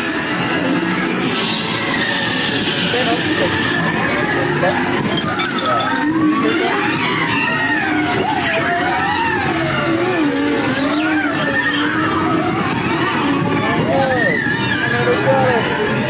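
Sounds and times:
wavering gliding wails: 0.0 - 16.0.

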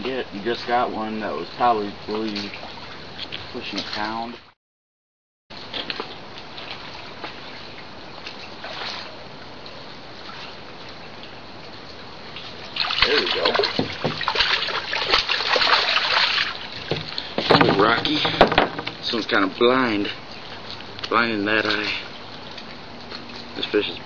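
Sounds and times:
steady background hiss: 0.0 - 4.4, 5.6 - 24.0
fish splashing in water: 5.6 - 19.2.

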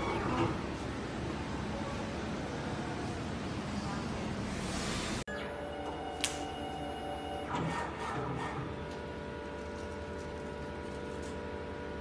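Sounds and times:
feed rollers whirring: 0.0 - 3.4, 5.9 - 12.0.

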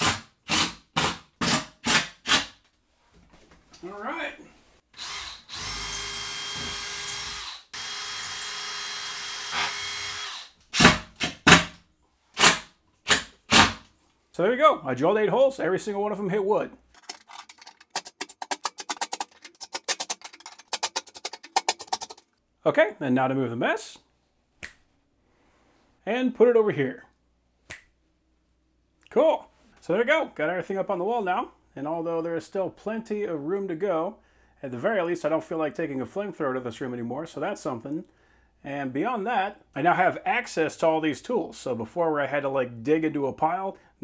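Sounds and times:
cordless drill driving screw: 5.0 - 11.5
rapid sharp clicking: 17.4 - 22.3.

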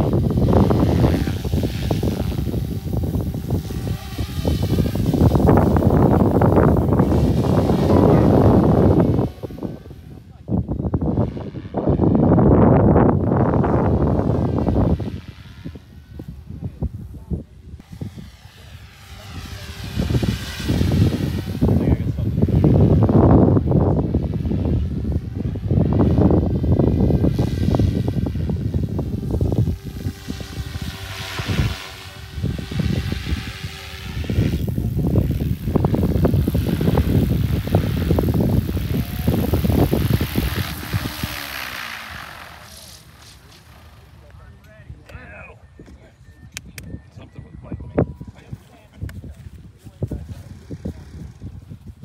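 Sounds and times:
gusty rush of air: 0.0 - 44.0
rc helicopter rotor whine: 0.0 - 44.6, 45.7 - 52.0.

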